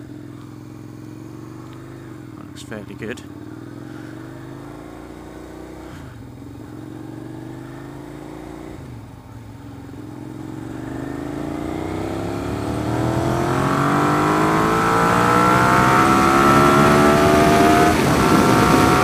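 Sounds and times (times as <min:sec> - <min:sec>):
motorcycle engine accelerating: 0:00.0 - 0:19.0.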